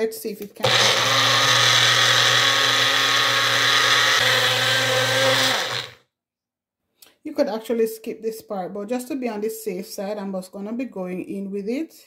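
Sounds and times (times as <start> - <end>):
blender motor running: 0.6 - 6.0.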